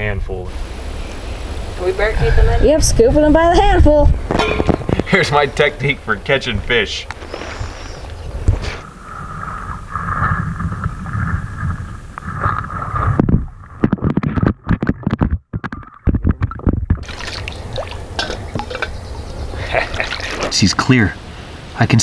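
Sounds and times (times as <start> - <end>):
water splashing and churning: 7.2 - 21.3.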